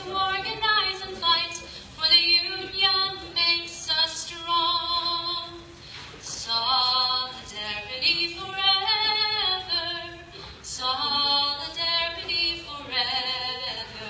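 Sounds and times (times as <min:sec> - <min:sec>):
woman singing unaccompanied: 0:00.0 - 0:05.7, 0:06.3 - 0:14.0.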